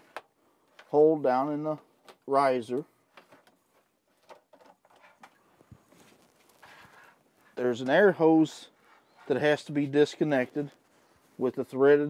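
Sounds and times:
soft rustles of hands on plastic: 0:03.0 - 0:11.7.

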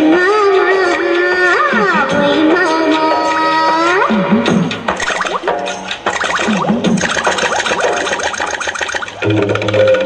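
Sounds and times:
quick percussion strokes: 0:04.8 - 0:09.2.

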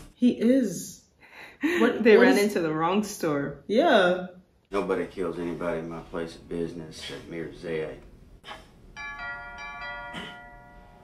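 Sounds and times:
bell-like chime: 0:09.0 - 0:11.0.

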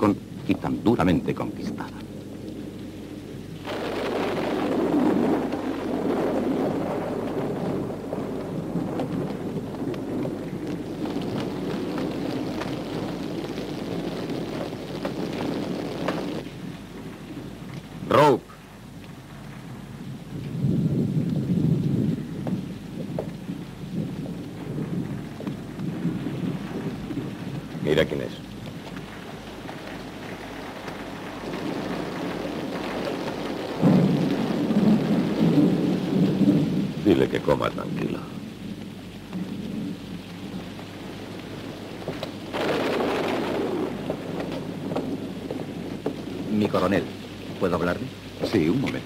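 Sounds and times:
heavy rain: 0:00.0 - 0:49.0
rolling thunder: 0:00.0 - 0:49.0.

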